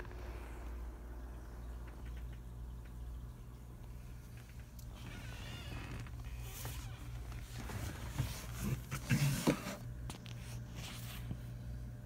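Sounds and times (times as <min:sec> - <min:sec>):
aquarium pump humming: 0:00.0 - 0:12.0.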